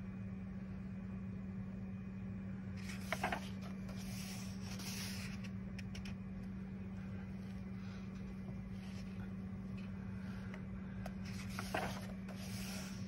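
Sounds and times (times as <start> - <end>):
steady low hum: 0.0 - 13.0
book page turning: 2.8 - 6.2, 11.1 - 13.0.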